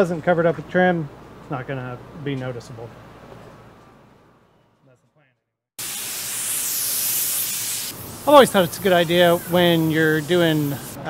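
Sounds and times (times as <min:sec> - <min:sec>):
compressed air blow gun hissing: 0:05.8 - 0:11.0.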